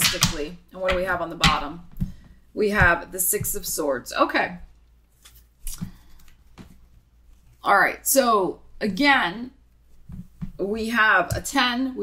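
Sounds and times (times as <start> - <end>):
cards shuffling and slapping: 5.1 - 6.8.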